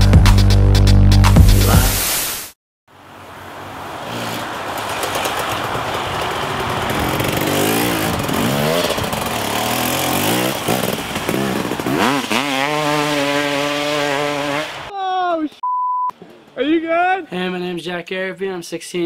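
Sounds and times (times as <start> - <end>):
dirt bike engine revving: 3.8 - 14.9.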